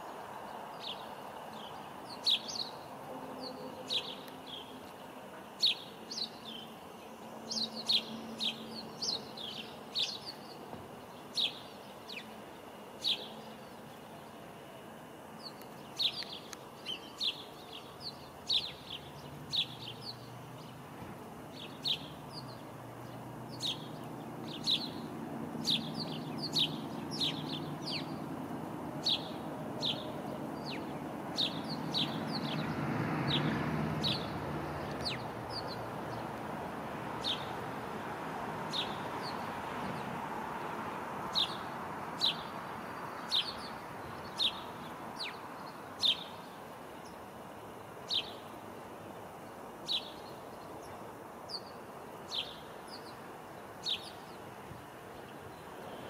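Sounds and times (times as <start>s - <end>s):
songbird chirping: 0.0s - 56.0s.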